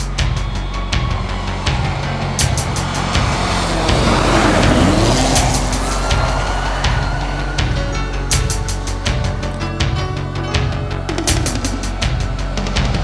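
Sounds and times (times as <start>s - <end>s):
music with pounding beat: 0.0s - 13.0s
rally car engine passing: 0.1s - 9.6s
tyres rushing through snow: 0.2s - 9.2s.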